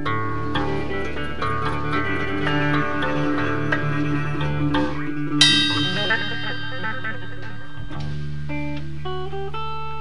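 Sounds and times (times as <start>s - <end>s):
electric guitar: 0.0s - 10.0s
drum kit: 0.6s - 9.0s
loud ringing hit: 4.8s - 8.8s.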